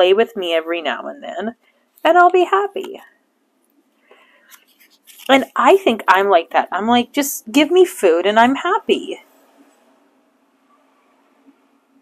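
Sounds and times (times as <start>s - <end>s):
faint breath: 3.9s - 4.7s
paper pages handled: 4.4s - 6.0s.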